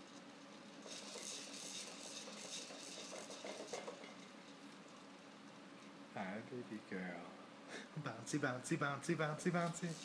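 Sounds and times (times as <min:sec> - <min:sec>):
baby bouncer rattling and rustling: 0:01.8 - 0:04.3.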